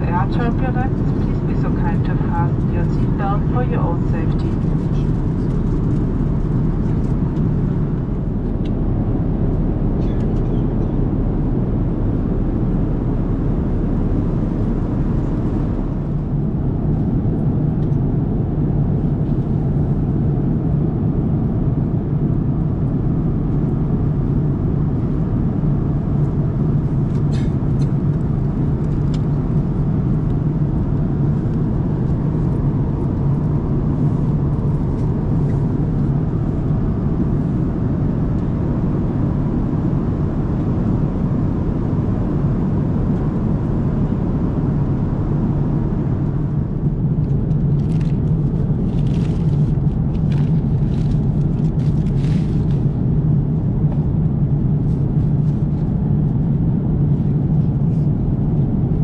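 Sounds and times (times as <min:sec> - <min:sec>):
airplane cabin airflow and engine drone: 0:00.0 - 0:59.0.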